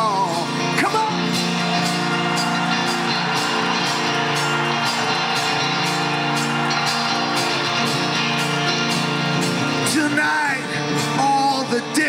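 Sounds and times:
rock band chords: 0.0 - 12.0
steady drum beat: 1.4 - 9.6.

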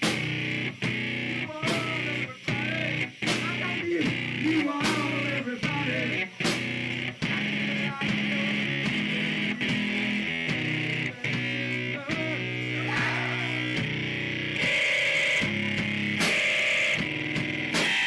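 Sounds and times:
live electric keyboard music: 0.0 - 18.0.

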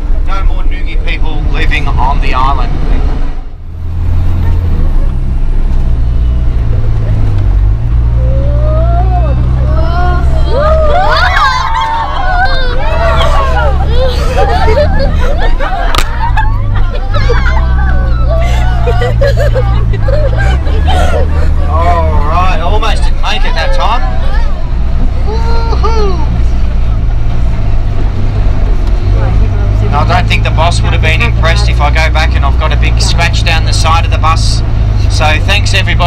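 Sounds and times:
bus engine droning: 0.0 - 36.0
passengers chatting and laughing: 0.0 - 36.0.

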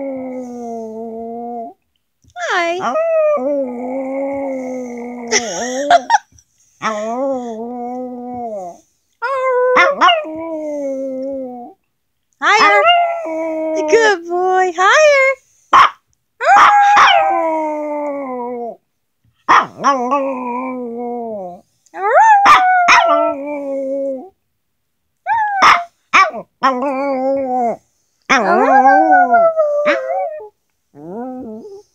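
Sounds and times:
dog barking: 15.8 - 17.2, 19.5 - 19.8, 22.4 - 23.2, 25.6 - 26.4
dog howling: 28.3 - 30.5.

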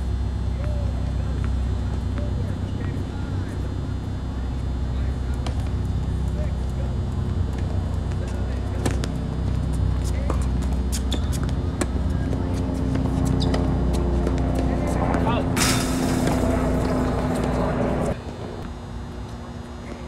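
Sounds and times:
steady low hum: 0.0 - 20.0
tennis ball bouncing: 10.3 - 15.3
racket hitting tennis ball: 13.0 - 18.1
loud rushing hiss: 15.6 - 16.6.

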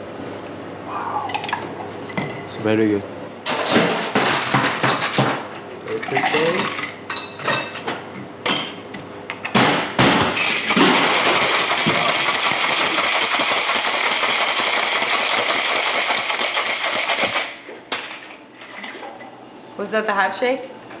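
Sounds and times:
ice rattling in cocktail shaker: 11.0 - 17.4.

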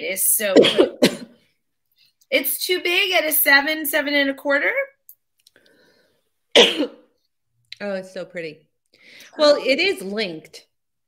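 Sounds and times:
woman clearing her throat: 0.6 - 1.4, 6.6 - 7.0.

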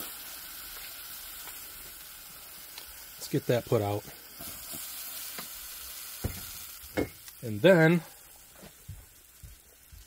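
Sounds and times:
food sizzling in metal can: 0.0 - 10.0.

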